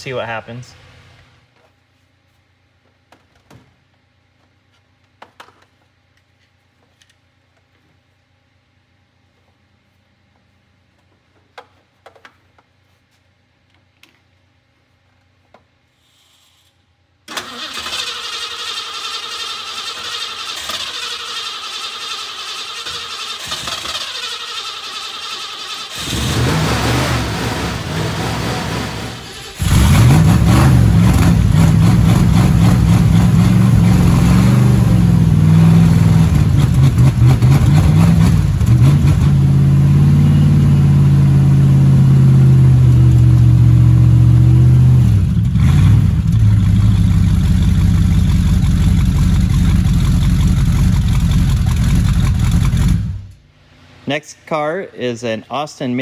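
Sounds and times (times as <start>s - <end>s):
starter motor cranking: 17.3s - 26.6s
car engine revving and idling: 25.9s - 53.4s.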